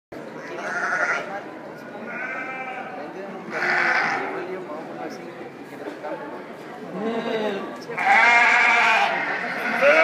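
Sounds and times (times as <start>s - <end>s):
murmur of voices: 0.1s - 10.0s
sheep bleating: 0.4s - 1.3s, 2.0s - 4.3s, 6.9s - 10.0s.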